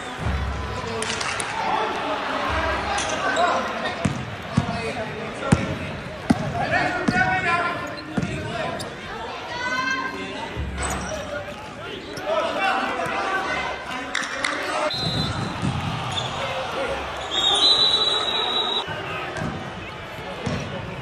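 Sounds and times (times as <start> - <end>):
players' voices and shouts echoing: 0.0 - 21.0.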